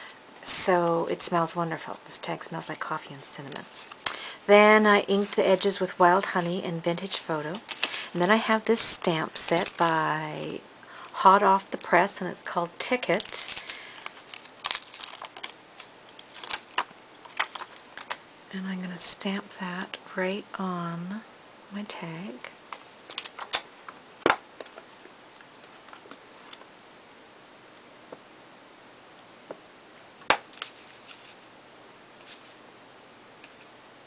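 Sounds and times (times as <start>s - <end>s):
plastic crinkling: 5.0s - 12.2s, 12.8s - 18.2s, 22.7s - 24.9s.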